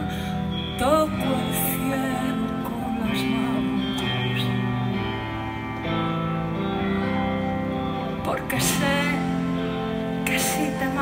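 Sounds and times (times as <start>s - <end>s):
live band playing chords: 0.0s - 11.0s.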